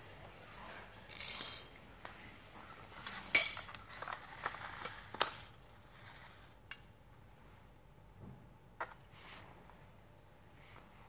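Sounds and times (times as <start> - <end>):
plastic toy pieces clattering: 0.4 - 1.8, 3.0 - 5.6.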